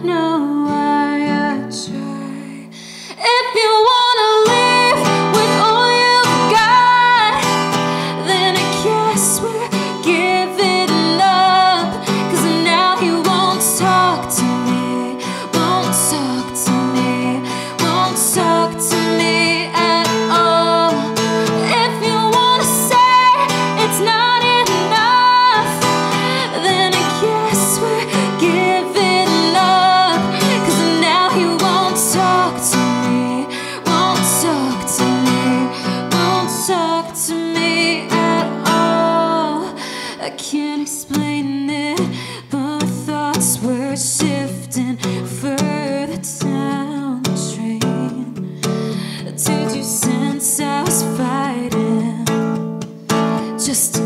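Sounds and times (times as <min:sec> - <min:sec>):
strummed acoustic guitar: 0:00.0 - 0:54.0
woman singing: 0:00.0 - 0:54.0.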